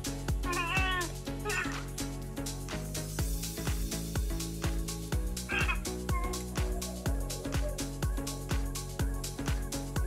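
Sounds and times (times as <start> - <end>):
background music with beat: 0.0 - 10.0
cat meowing: 0.5 - 1.8, 5.5 - 6.3.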